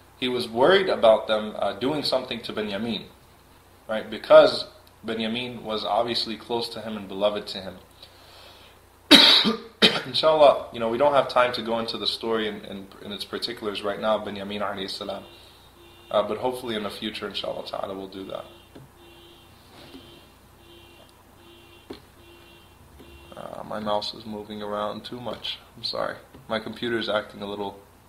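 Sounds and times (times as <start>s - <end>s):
man coughing: 9.1s - 10.1s
pulsing electronic buzz: 15.1s - 16.4s, 18.2s - 23.6s.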